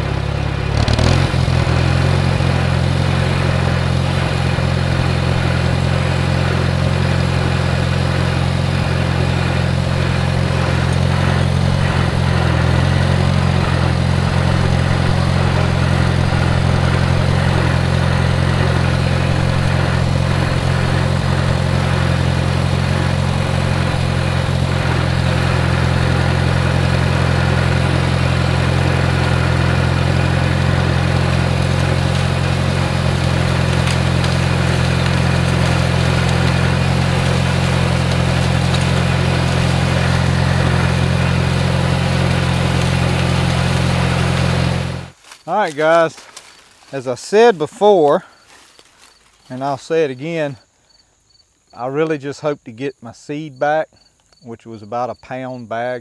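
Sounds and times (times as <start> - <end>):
tractor engine droning: 0.0 - 50.6.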